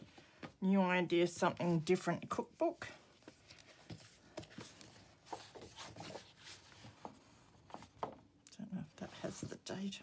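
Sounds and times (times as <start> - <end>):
book pages rustling: 3.0 - 8.2.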